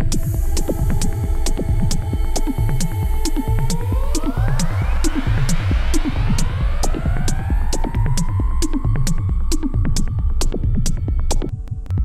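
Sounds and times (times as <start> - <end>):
synth tone gliding upward: 0.0 - 10.5
throbbing low bass pulse: 0.0 - 12.0.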